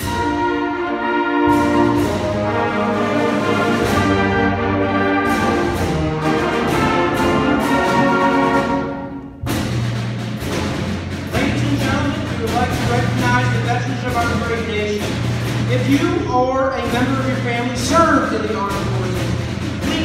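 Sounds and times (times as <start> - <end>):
concert band playing: 0.0 - 20.0
percussion strikes: 0.0 - 20.0.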